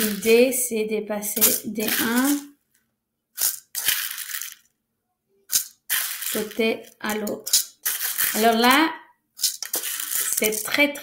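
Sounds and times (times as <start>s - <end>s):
rice rattling into plastic bowl: 3.4s - 4.6s, 5.5s - 8.8s, 9.4s - 10.8s.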